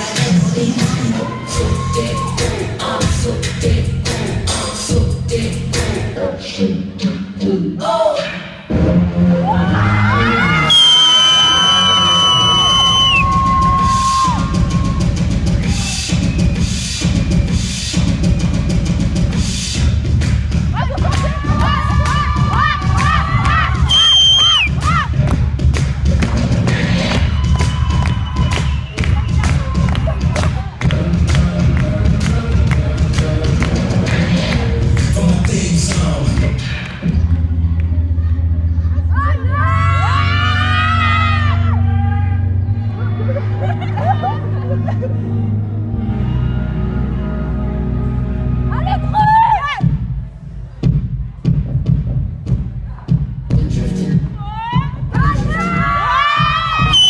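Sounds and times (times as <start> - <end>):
audience cheering and shouting: 0.0 - 3.1, 9.3 - 16.4, 20.6 - 31.3, 38.2 - 44.6, 48.7 - 50.2, 54.2 - 57.0
dance music with thumping bass: 0.0 - 7.7, 13.2 - 37.4, 49.6 - 57.0.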